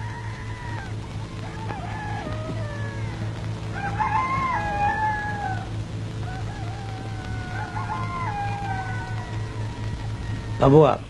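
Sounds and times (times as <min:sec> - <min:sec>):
rooster crowing: 0:00.0 - 0:11.0
steady low hum: 0:00.0 - 0:11.0.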